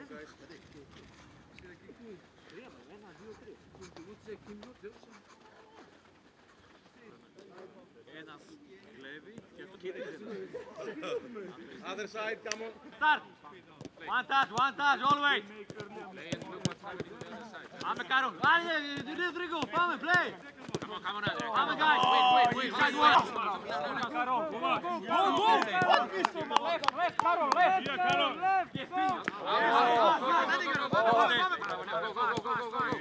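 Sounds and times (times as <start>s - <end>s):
football kicked: 13.8s - 24.1s, 24.7s - 29.5s, 30.5s - 33.0s
man shouting: 21.6s - 23.3s
men calling out: 21.6s - 24.0s, 24.6s - 31.6s.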